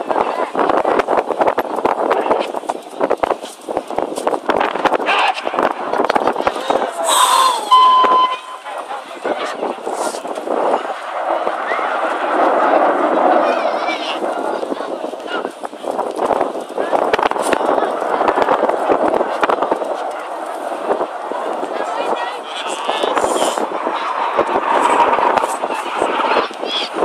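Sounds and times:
indistinct voices: 0.0s - 27.0s
wind buffeting microphone: 0.0s - 27.0s.

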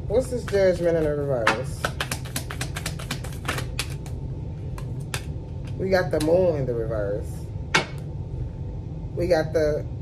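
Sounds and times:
cards being shuffled by hand: 1.8s - 4.2s.

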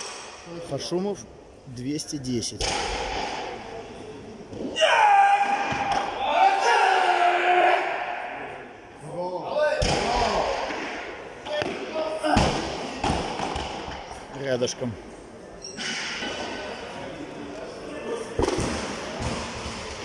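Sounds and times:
people shouting encouragement: 4.8s - 8.2s.

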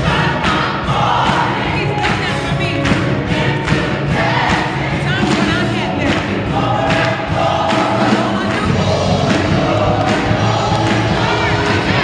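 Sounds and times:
audience clapping along: 0.0s - 12.0s
choir singing: 0.0s - 12.0s.

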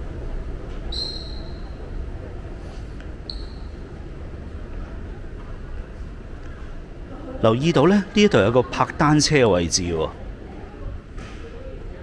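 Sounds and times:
low rumble of indoor hall: 0.0s - 12.0s
short high squeak: 1.0s - 1.8s.

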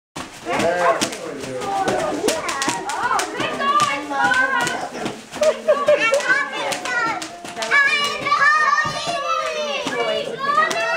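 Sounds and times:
bubble wrap popping: 0.3s - 8.2s
children squealing and chattering: 1.6s - 10.9s.

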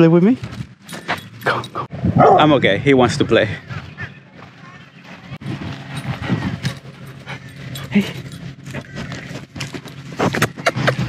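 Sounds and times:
dog panting: 5.6s - 8.9s.

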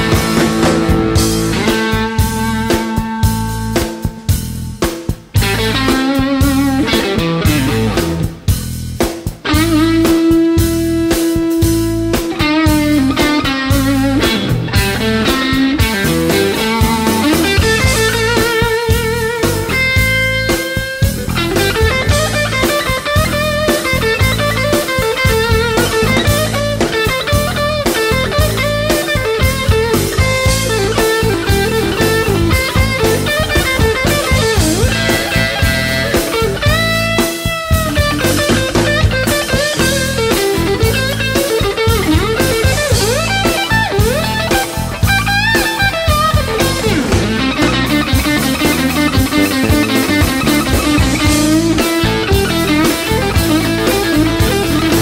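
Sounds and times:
drums: 0.0s - 55.0s
electric guitar bending notes: 0.0s - 55.0s.

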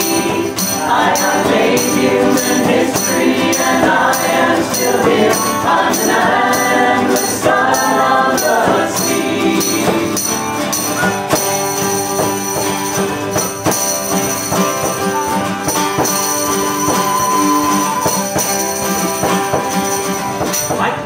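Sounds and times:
voices singing together: 0.0s - 13.0s
tambourine jingles: 0.0s - 20.8s
acoustic guitar: 0.0s - 21.0s
frame drum beats: 0.0s - 21.0s.

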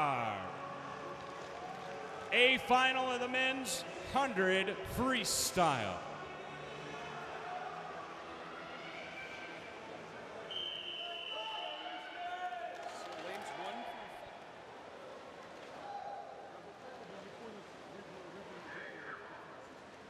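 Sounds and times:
referee whistle blast: 10.5s - 12.0s.

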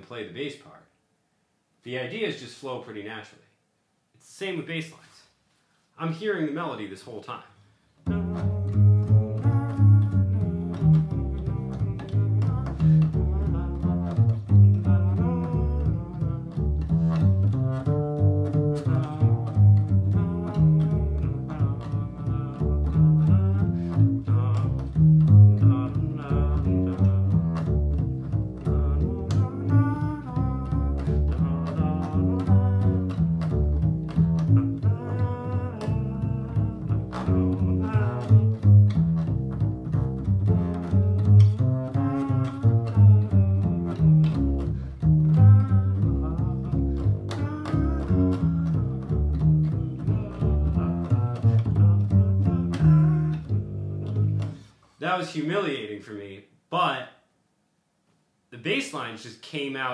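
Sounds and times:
plucked double bass: 8.0s - 54.7s.

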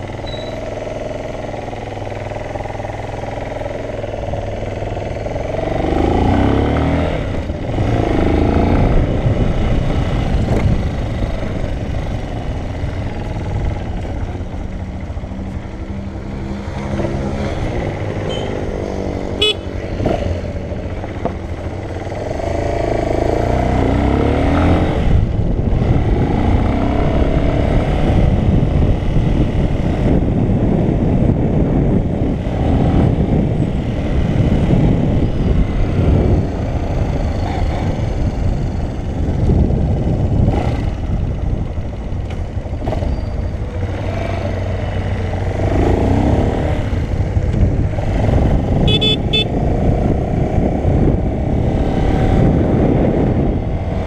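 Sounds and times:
motorcycle engine accelerating: 0.0s - 54.0s
wind noise on microphone: 3.8s - 54.0s.

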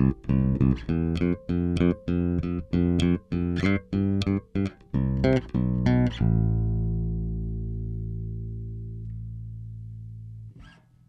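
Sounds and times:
electric bass notes: 0.0s - 11.0s.

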